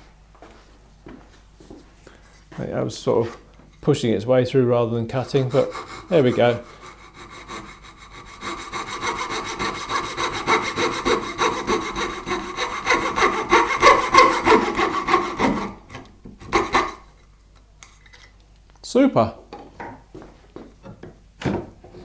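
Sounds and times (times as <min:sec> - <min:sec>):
coping saw cutting wood: 0:05.1 - 0:17.0.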